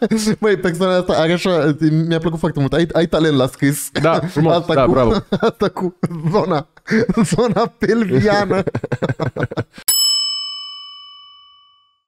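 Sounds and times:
bell-like ding: 0:09.9 - 0:12.0.

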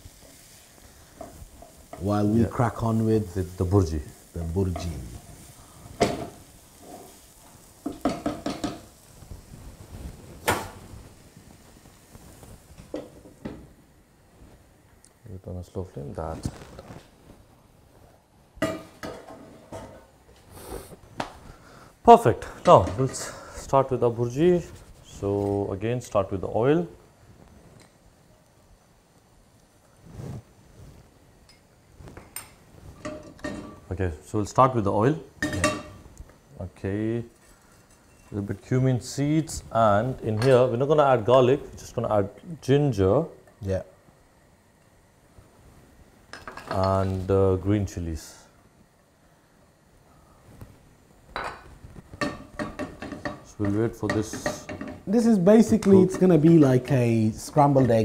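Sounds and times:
kitchen pans clattering: 0:07.8 - 0:08.9, 0:18.6 - 0:20.2, 0:32.2 - 0:33.9, 0:35.4 - 0:36.0, 0:51.4 - 0:55.1
soft brushing noise: 0:09.0 - 0:13.3, 0:14.2 - 0:14.8, 0:16.0 - 0:18.2, 0:23.9 - 0:25.7, 0:29.9 - 0:33.9
cookware being handled: 0:18.6 - 0:20.2, 0:31.5 - 0:33.9, 0:35.4 - 0:36.0, 0:51.3 - 0:55.1.

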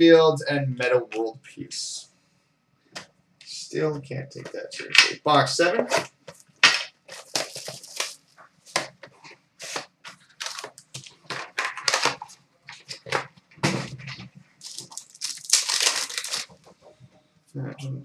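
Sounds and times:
foil wrapper crinkling and tearing: 0:07.1 - 0:08.2, 0:09.6 - 0:13.2, 0:14.6 - 0:16.6.

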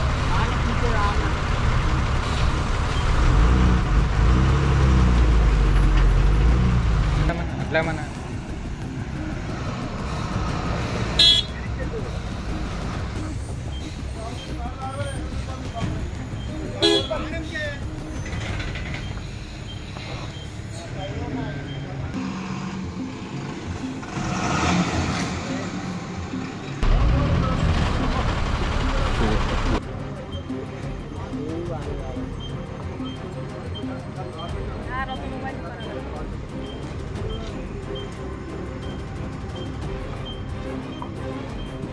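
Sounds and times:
diesel engines at low revs: 0:00.0 - 0:41.9
vehicle horn toot: 0:11.2 - 0:11.6, 0:16.6 - 0:17.5.

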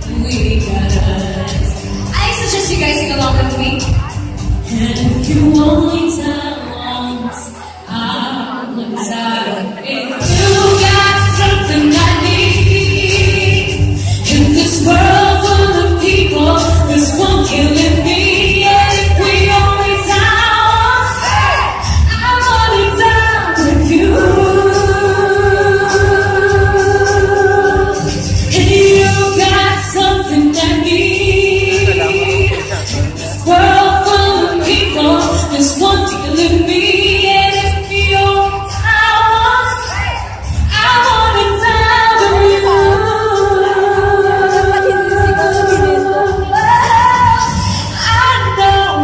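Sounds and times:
backing music with pulsing beat: 0:00.0 - 0:06.3, 0:10.2 - 0:49.0
woman singing pop live: 0:00.0 - 0:49.0.

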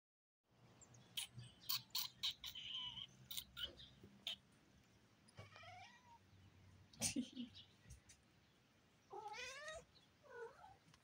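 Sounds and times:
cat meowing: 0:05.4 - 0:06.2, 0:09.1 - 0:10.8.

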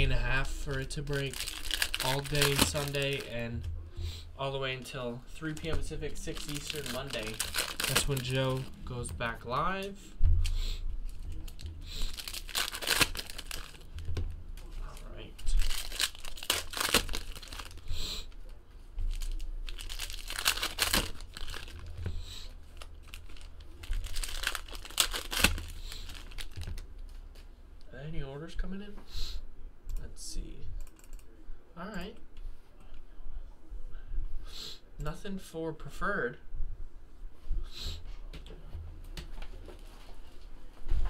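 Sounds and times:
foil wrappers crinkling and tearing: 0:00.0 - 0:03.4, 0:05.4 - 0:08.7, 0:11.0 - 0:14.1, 0:14.7 - 0:18.4, 0:19.0 - 0:26.8.

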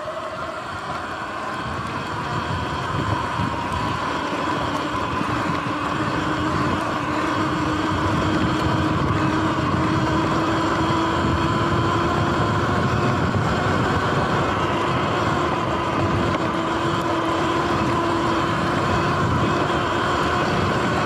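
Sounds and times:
electric motor whine: 0:00.0 - 0:21.0.

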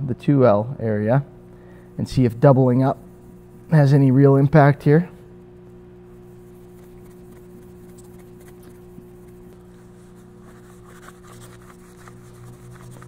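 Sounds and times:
steady low hum: 0:00.0 - 0:13.0
polishing pad rubbing on metal: 0:06.1 - 0:13.0.

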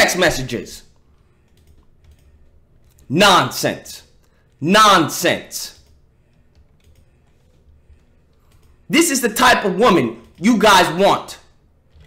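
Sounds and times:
computer keyboard typing: 0:01.0 - 0:03.1, 0:05.6 - 0:08.9, 0:09.8 - 0:12.0.

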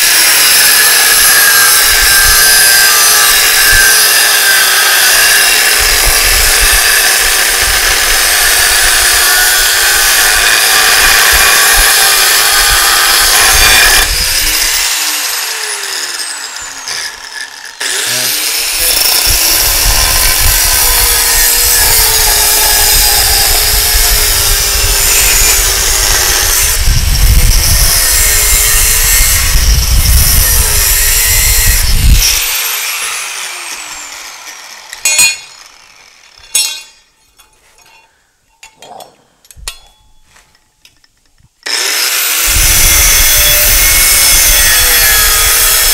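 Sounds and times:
angle grinder cutting steel: 0:00.0 - 0:37.4, 0:41.6 - 0:45.9.

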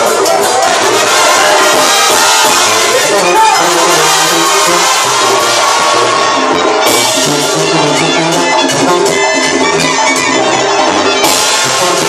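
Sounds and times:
crowd noise: 0:00.0 - 0:12.0
live banda music: 0:00.0 - 0:12.0.

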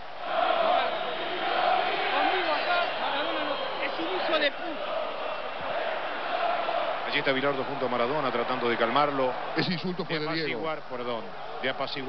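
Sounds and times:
football crowd chanting and shouting: 0:00.0 - 0:12.0.

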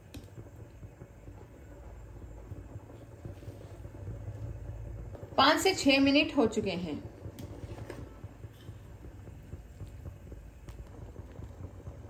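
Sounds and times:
rice boiling in a pot: 0:00.0 - 0:12.0.

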